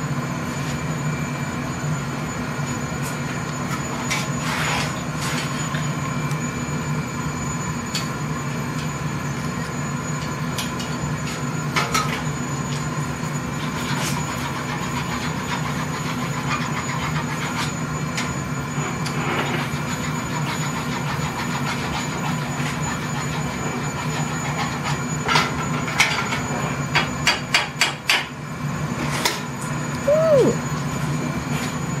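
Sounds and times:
furnace roar and hum: 0.0s - 32.0s
blowpipe rolling on bench: 18.8s - 26.8s.

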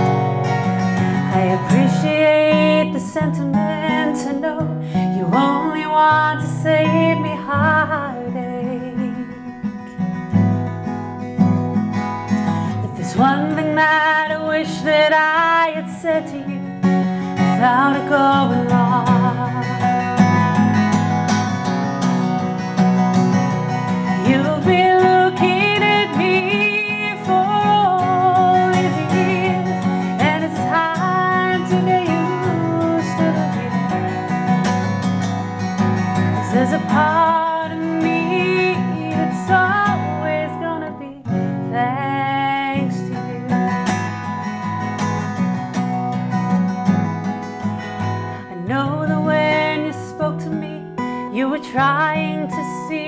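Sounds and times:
woman singing a ballad: 0.0s - 10.3s, 12.3s - 20.6s, 23.7s - 35.0s, 35.7s - 44.4s, 48.0s - 53.0s
acoustic guitar strumming: 0.0s - 53.0s.

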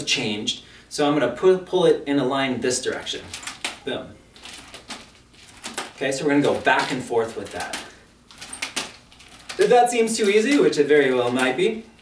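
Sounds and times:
nunchaku chain clicking and rattling: 4.4s - 11.6s.

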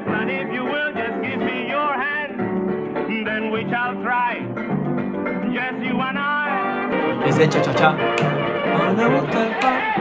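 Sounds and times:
person singing: 0.0s - 4.5s, 5.4s - 10.0s.

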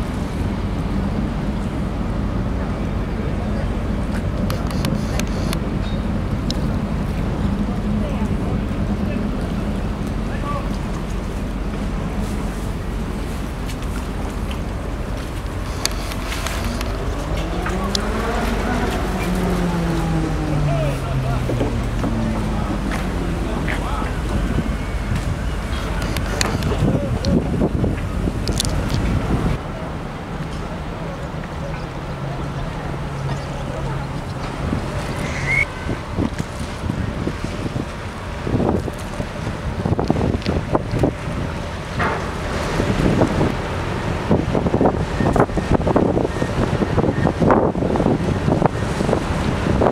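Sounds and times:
low hum dropping in pitch: 0.0s - 30.3s
outdoor noise: 0.0s - 49.9s
wind buffeting microphone: 0.0s - 49.9s.

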